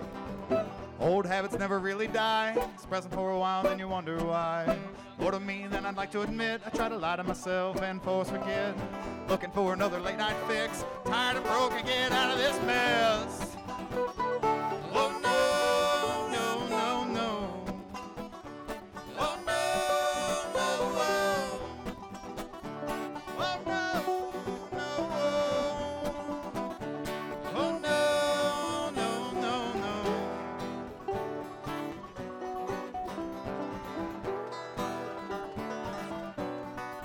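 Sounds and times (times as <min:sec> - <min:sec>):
fast bluegrass string band: 0:00.0 - 0:37.0.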